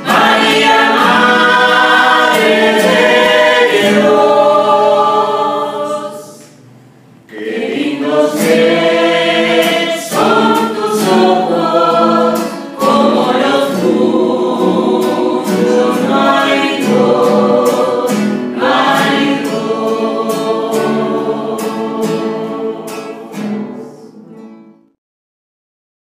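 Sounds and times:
group singing a hymn: 0.0 - 6.6, 7.3 - 24.6
strummed acoustic guitar: 0.0 - 24.9.

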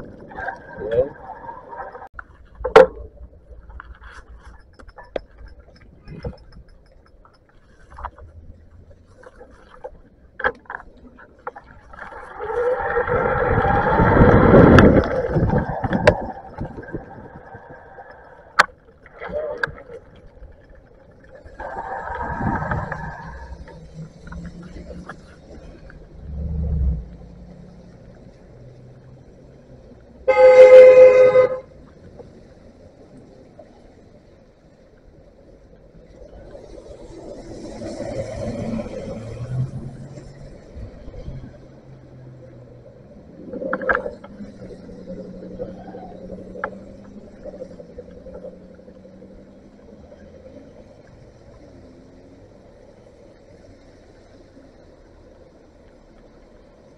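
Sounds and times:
street traffic: 0.0 - 56.9
vehicle rumbling past: 22.0 - 31.7, 36.5 - 52.8
vehicle horn: 30.3 - 31.7.

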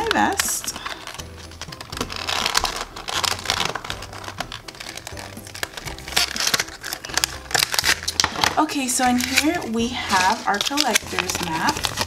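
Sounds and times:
plastic packaging crinkling: 0.0 - 12.0
background music with bass line: 1.2 - 8.6.

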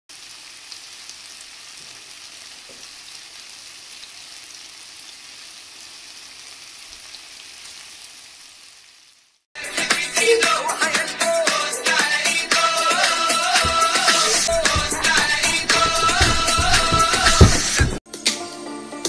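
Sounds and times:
fritters sizzling in oil: 0.1 - 9.4
music: 9.6 - 19.0.

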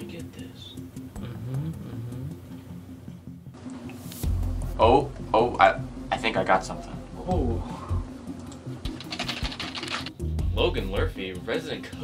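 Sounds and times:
typing on computer keyboard: 8.9 - 10.2.

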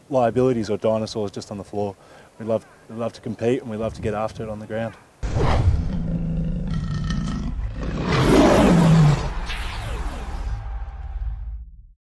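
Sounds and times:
lion roar: 5.2 - 9.5
low rumble: 5.2 - 12.0.

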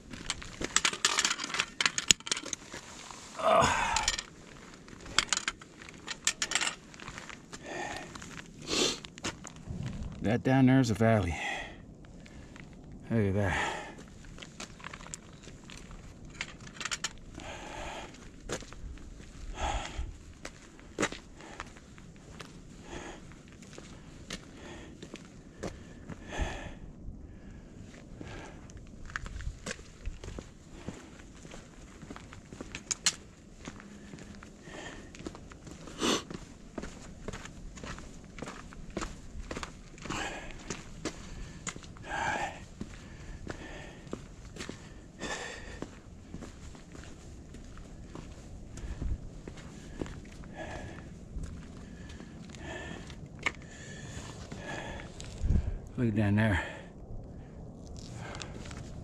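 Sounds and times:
footsteps on stone: 0.0 - 10.3, 14.0 - 22.6, 29.0 - 55.5.

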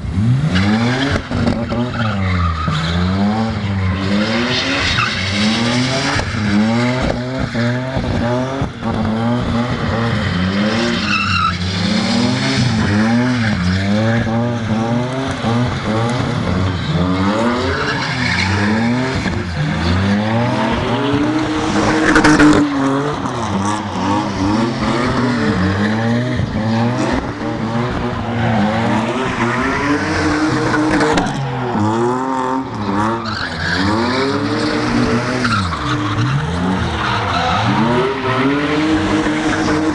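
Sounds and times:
car engine revving: 0.0 - 39.9.

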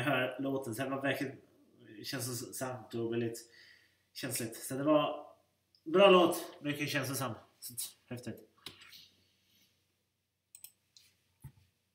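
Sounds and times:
computer mouse clicks: 10.5 - 11.6.

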